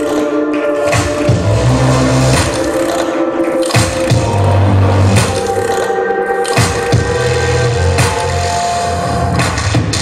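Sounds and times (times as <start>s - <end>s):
low bass line: 1.2s - 3.0s, 3.7s - 5.9s, 6.6s - 9.4s.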